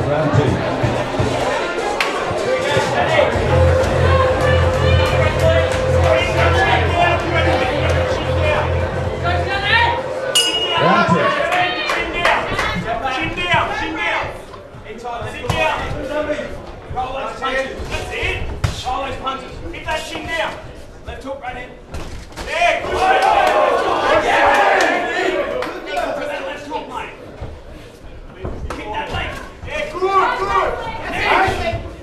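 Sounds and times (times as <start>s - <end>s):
crowd shouting and yelling: 0.0s - 17.2s, 22.5s - 27.3s, 28.7s - 32.0s
boxing ring bell: 10.4s - 11.4s.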